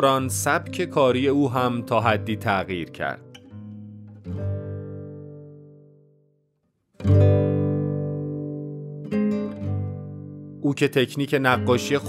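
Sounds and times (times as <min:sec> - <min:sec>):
plucked string chord ringing: 0:07.0 - 0:10.6.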